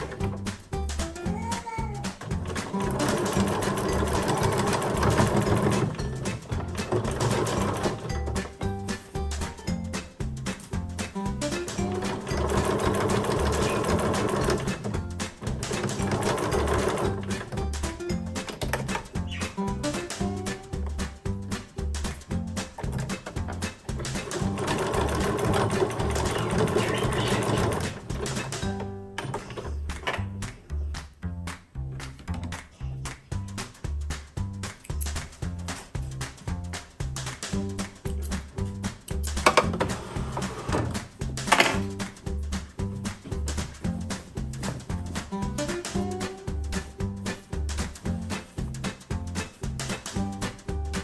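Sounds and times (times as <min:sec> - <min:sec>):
background music: 0:00.0 - 0:51.0
sewing machine stitching: 0:02.2 - 0:08.6, 0:11.5 - 0:19.2, 0:22.7 - 0:30.2, 0:39.4 - 0:42.0.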